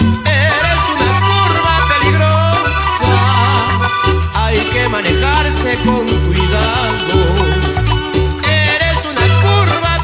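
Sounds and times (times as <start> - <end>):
latin dance band instrumental: 0.0 - 10.0.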